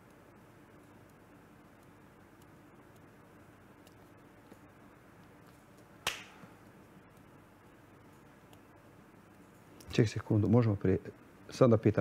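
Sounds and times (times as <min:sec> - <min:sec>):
sharp snap: 0:06.0 - 0:06.4.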